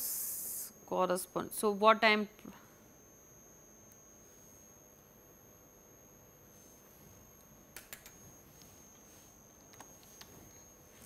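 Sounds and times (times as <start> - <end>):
computer keyboard keystrokes: 7.8 - 8.1.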